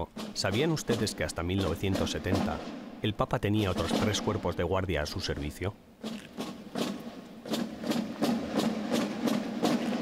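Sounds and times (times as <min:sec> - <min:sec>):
regular sharp beats: 0:00.0 - 0:10.0.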